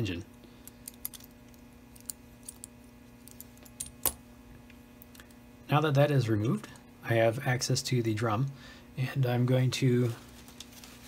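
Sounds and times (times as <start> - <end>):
faint steady low hum: 0.0 - 11.0
small metal parts clicking: 0.6 - 4.2.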